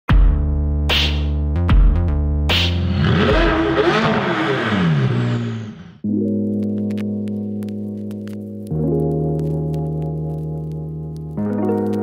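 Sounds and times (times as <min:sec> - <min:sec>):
electronic music: 0:00.9 - 0:09.2
sports car engine revving: 0:02.8 - 0:06.0.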